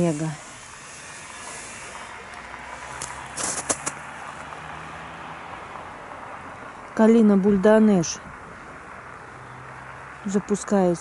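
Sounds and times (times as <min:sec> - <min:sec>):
outdoor hiss: 0:00.0 - 0:04.2
footsteps crunching on snow: 0:03.3 - 0:04.0.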